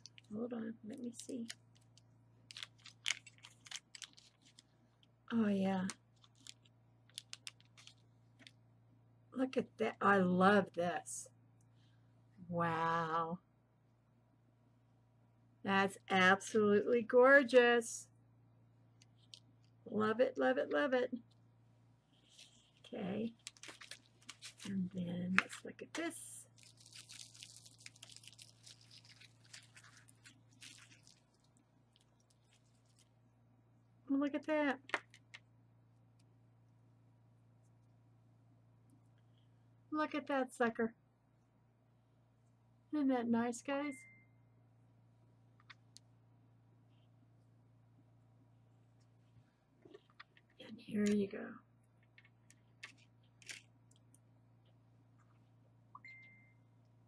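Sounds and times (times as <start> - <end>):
plastic bag crinkling: 0.0 - 5.0, 5.8 - 8.6, 22.2 - 33.1, 52.1 - 53.8.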